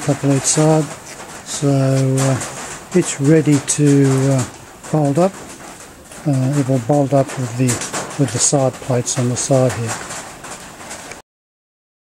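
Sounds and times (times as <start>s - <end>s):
faint background noise: 0.0s - 11.2s.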